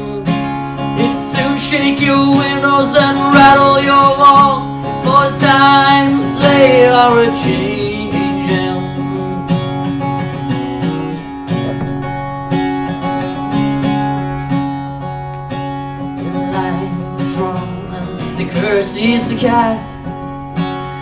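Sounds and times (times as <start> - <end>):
man singing: 0.0 - 9.9, 16.2 - 20.2
acoustic guitar strumming: 0.0 - 21.0.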